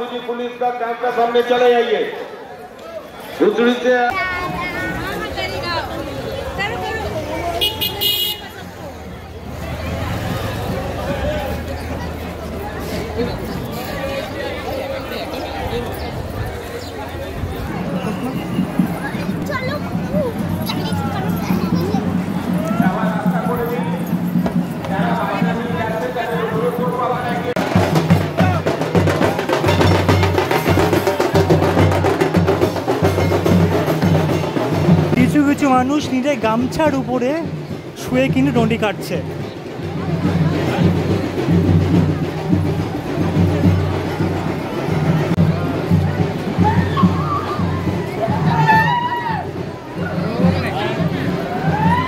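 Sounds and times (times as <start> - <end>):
street crowd chatter: 0.0 - 52.0
vehicle horn toots: 7.5 - 8.7
bass drums and side drum beating: 17.3 - 26.0, 26.8 - 52.0.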